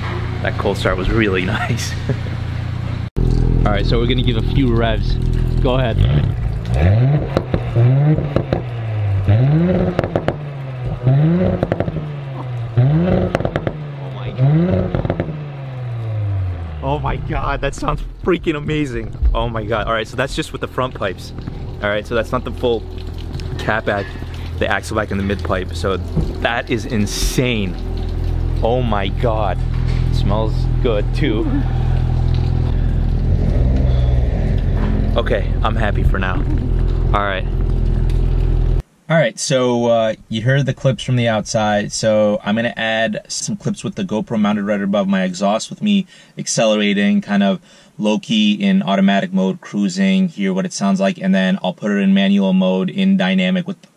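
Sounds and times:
car engine revving: 0.0s - 38.8s
exhaust crackles: 0.0s - 38.8s.

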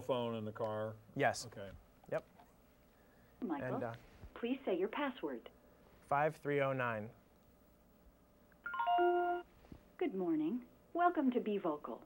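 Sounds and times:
electronic phone chime: 8.7s - 9.4s.

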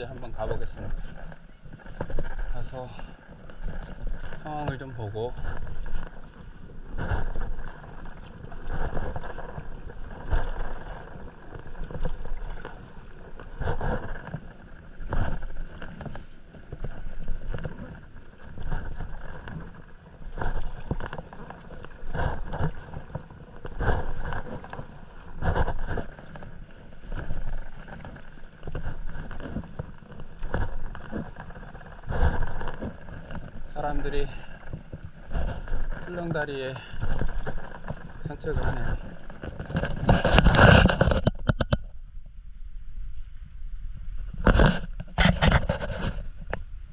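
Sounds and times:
paddle splashing through water: 0.0s - 42.0s, 44.1s - 46.9s.

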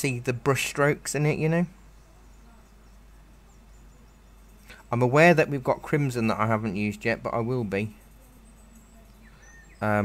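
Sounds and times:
background hiss: 0.0s - 10.0s
faint bird-like chirps: 0.8s - 10.0s.

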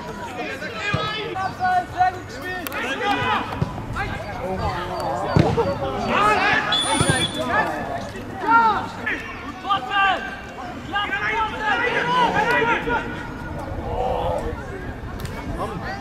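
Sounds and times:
players shouting: 0.1s - 14.8s.

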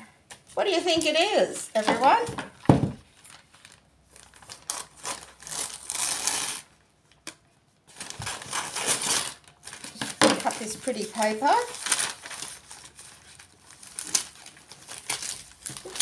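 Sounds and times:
wrapping paper crinkling: 3.0s - 7.3s, 7.9s - 16.0s.

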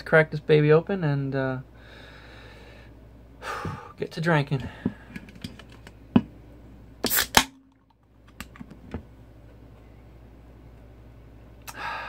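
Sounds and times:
gas hissing from can: 7.0s - 7.5s
can tab snapping open: 7.0s - 8.7s.

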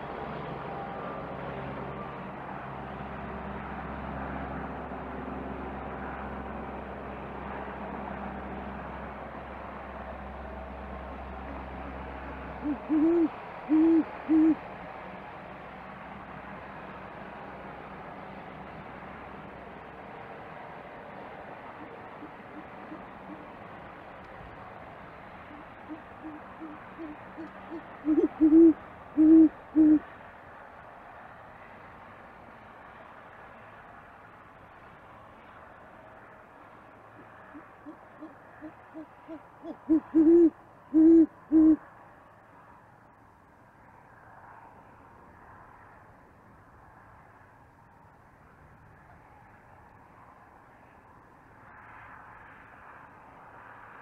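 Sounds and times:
owl hooting: 11.0s - 14.6s, 21.7s - 23.6s, 25.5s - 30.1s, 37.2s - 41.8s.

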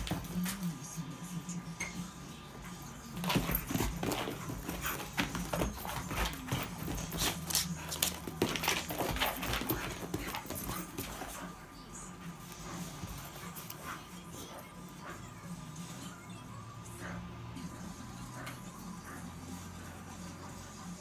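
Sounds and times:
animals scuffling on carpet: 2.5s - 14.8s.

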